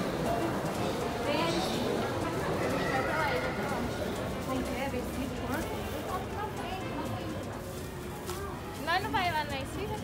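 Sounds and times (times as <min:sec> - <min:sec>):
people talking outdoors: 0:00.0 - 0:10.0.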